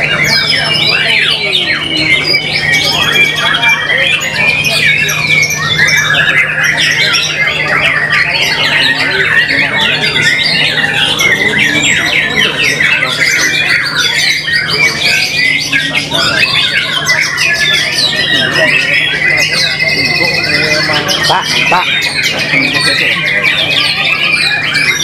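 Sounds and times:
birds singing chirps and trills: 0.0s - 25.0s.

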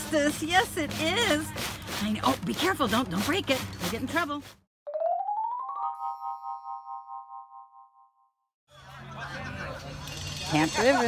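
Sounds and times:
bell-like chord ringing: 5.4s - 8.3s.

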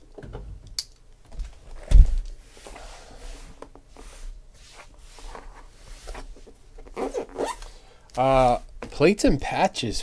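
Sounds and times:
tape and cardboard squeaks: 5.2s - 8.6s.

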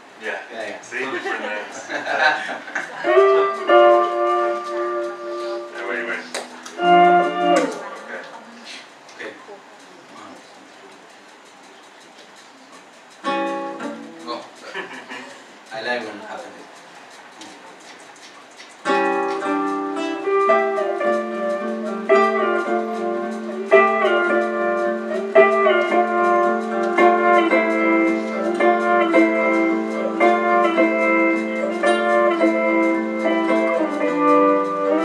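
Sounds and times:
acoustic guitars playing: 1.6s - 8.6s, 12.8s - 15.7s, 18.8s - 35.0s.

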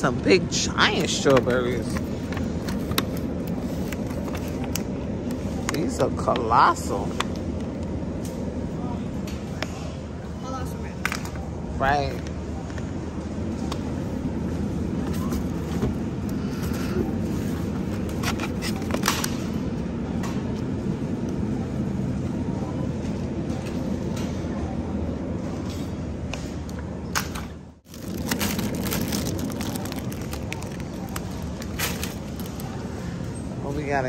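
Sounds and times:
supermarket background noise: 0.0s - 34.0s
plastic packaging crackling: 27.8s - 32.8s.

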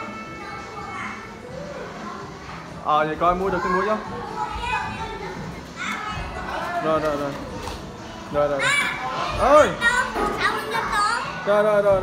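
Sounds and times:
children talking and calling out: 0.0s - 2.8s, 3.4s - 6.8s, 8.6s - 11.5s
indoor room hubbub: 0.0s - 12.0s.

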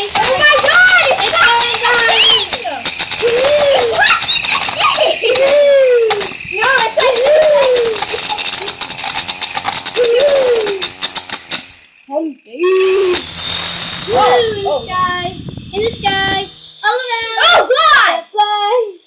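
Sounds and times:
child squealing: 0.0s - 8.8s, 9.9s - 10.9s, 12.5s - 13.3s, 14.0s - 15.4s
loud constant rattling: 0.0s - 18.8s.

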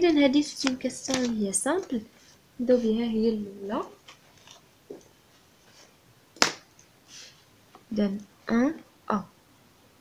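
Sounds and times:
paper rustling: 0.4s - 3.0s, 3.9s - 5.9s.

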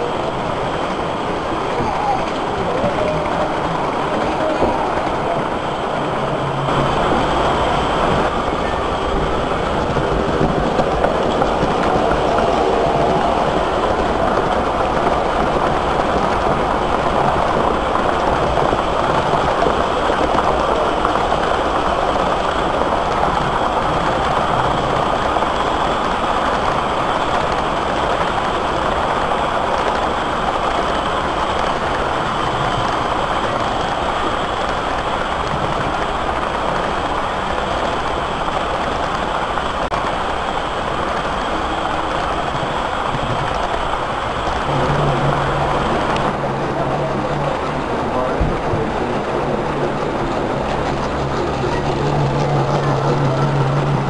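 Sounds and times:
model trains running on track: 0.0s - 54.0s
low steady hum: 44.3s - 54.0s.

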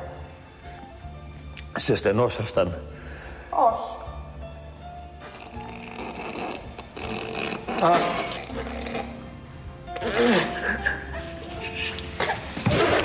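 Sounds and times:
background music: 0.0s - 13.0s
people stifling laughter: 10.3s - 12.0s.

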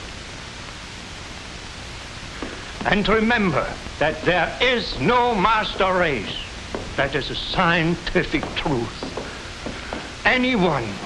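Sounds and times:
film soundtrack hiss: 0.0s - 11.0s
man talking: 2.8s - 9.3s, 10.2s - 11.0s.

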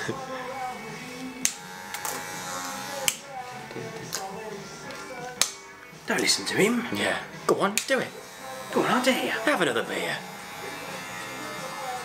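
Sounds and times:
electric hair clippers buzzing: 1.3s - 3.4s, 7.8s - 12.0s.

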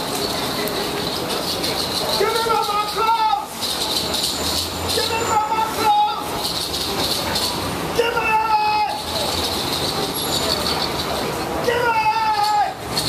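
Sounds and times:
low traffic rumble: 0.0s - 13.0s
street noise: 0.0s - 13.0s.

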